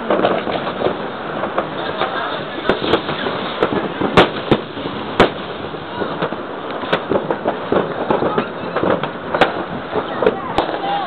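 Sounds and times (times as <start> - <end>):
fireworks crackling: 0.0 - 11.0
sharp firecracker bangs: 0.0 - 11.0.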